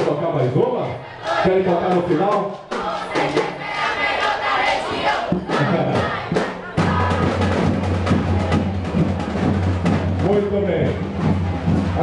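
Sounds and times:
marching band drums: 0.0 - 12.0
crowd voices: 0.6 - 12.0.

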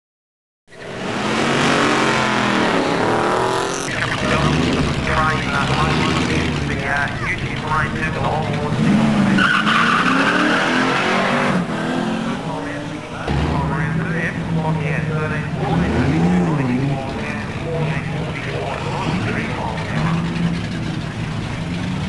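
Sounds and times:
car engines revving: 0.7 - 22.0
person speaking: 3.6 - 9.4, 12.4 - 20.2
tyre squeal: 9.2 - 11.2.

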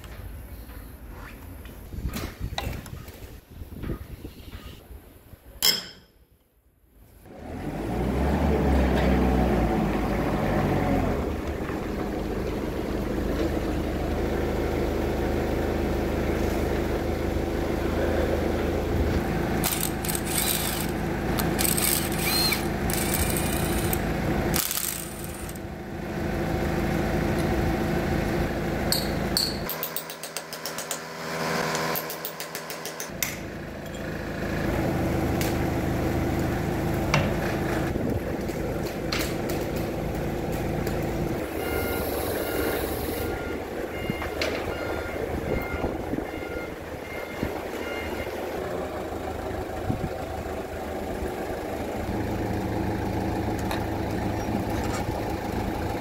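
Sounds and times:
engine running: 7.3 - 56.0
impact wrench hammering: 19.6 - 24.0, 24.6 - 25.6, 28.9 - 33.4.

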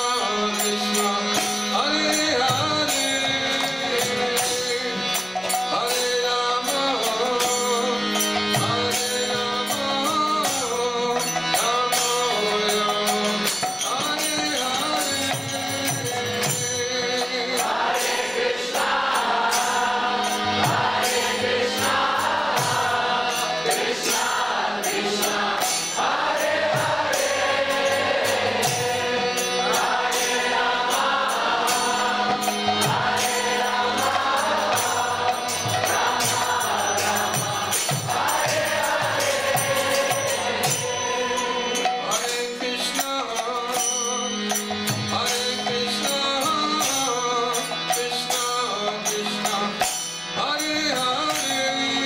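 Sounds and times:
hand cymbals struck: 0.0 - 52.0
group chanting mantra: 17.6 - 42.2.

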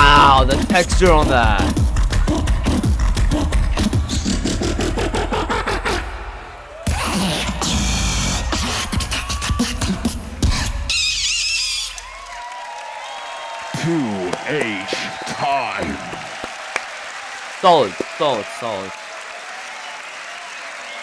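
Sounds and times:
beatboxing over deep bass: 0.0 - 6.2, 6.9 - 11.4
crowd cheering: 5.0 - 21.0.

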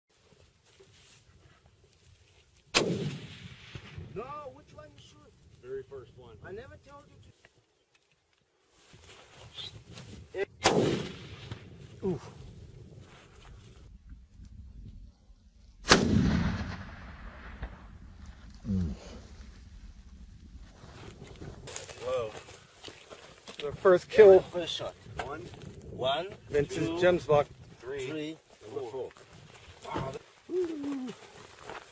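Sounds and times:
rifle shot echoing: 2.7 - 4.2, 10.6 - 11.8, 15.8 - 18.3
person humming low: 18.6 - 19.2, 30.5 - 31.3.

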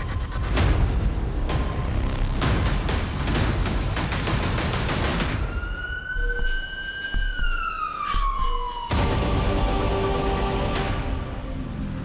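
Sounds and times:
siren wailing: 5.2 - 9.9.

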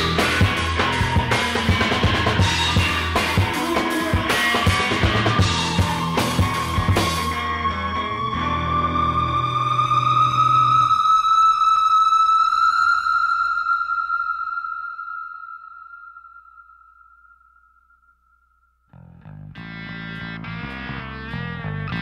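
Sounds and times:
rock band playing: 0.0 - 8.8.

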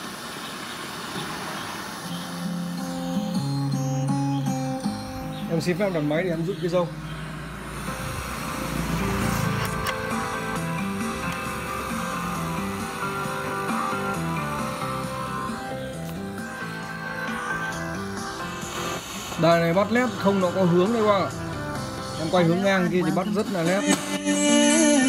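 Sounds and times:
radio music through speakers: 2.0 - 25.0.

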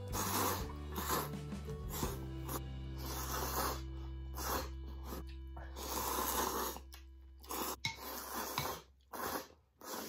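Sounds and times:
noodles being slurped: 0.0 - 10.0.

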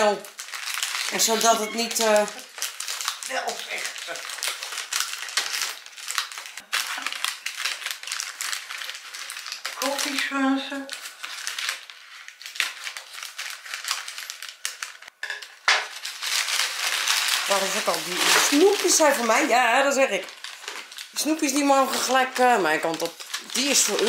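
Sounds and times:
paper bag crinkling: 0.0 - 15.1, 15.9 - 24.0.

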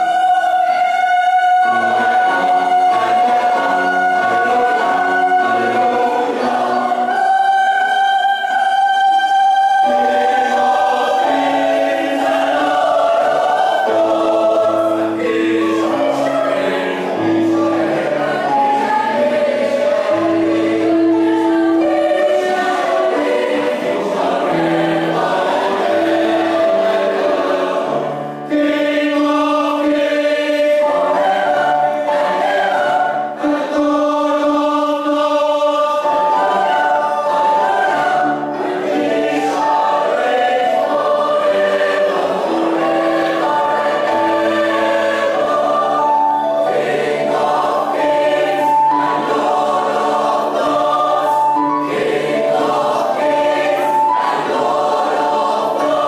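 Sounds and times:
mixed choir singing a carol: 0.0 - 56.0.

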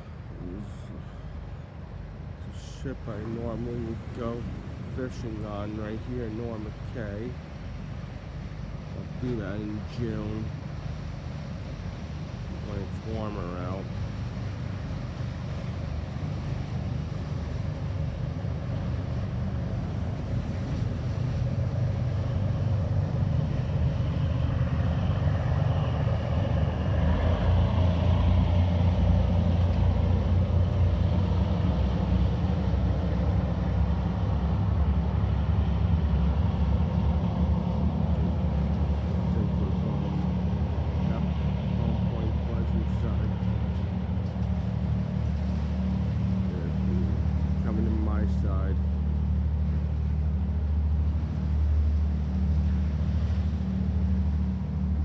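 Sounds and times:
boat engine drone: 0.0 - 55.0.

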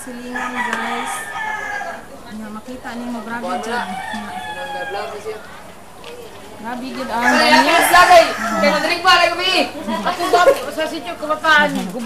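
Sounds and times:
rooster crowing: 0.0 - 2.2, 3.4 - 5.6, 7.0 - 9.4.

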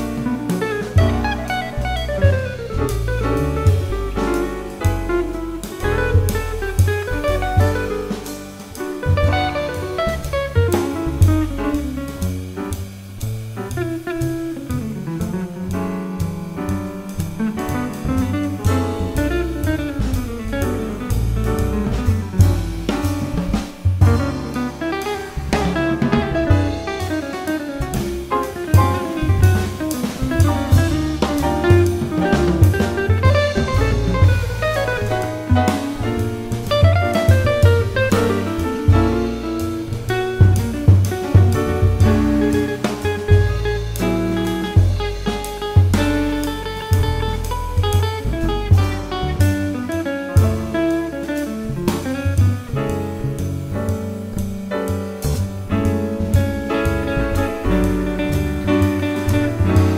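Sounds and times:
double bass: 0.0 - 59.9
drum kit: 0.0 - 59.9
piano: 0.0 - 59.9.

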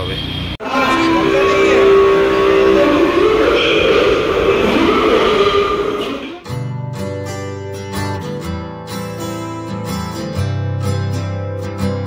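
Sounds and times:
metro platform ambience: 0.2 - 6.5
background music: 0.6 - 6.6
acoustic guitar music: 0.6 - 12.0.

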